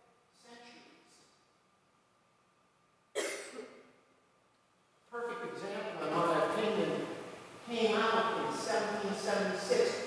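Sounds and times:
loud cough: 3.2 - 3.8.

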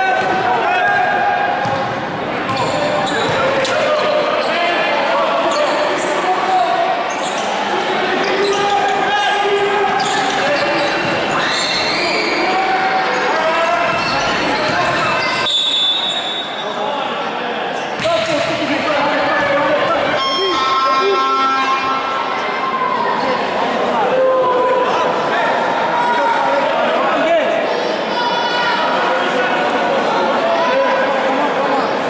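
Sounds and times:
spectators' voices and shouts: 0.0 - 32.0
basketball bouncing on court: 0.2 - 3.5
high whistle: 15.4 - 16.6, 20.2 - 22.7.

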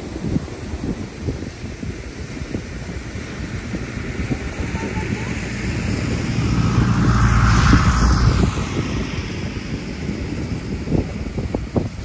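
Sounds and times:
surf breaking on shore: 0.0 - 12.0
wind buffeting microphone: 0.0 - 12.0.

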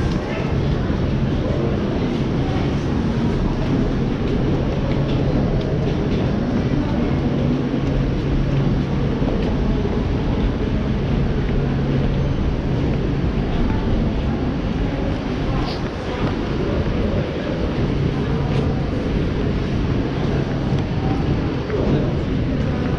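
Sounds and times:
constant rumble: 0.0 - 22.9.

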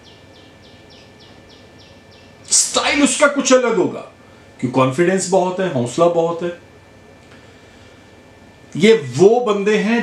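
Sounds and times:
small bird chirping: 0.0 - 2.6.

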